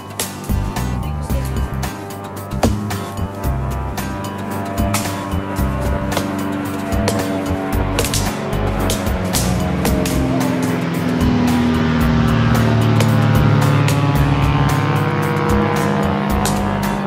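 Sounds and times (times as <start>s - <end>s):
engine-like hum rising: 0.0s - 17.0s
upbeat funk music: 0.0s - 17.0s.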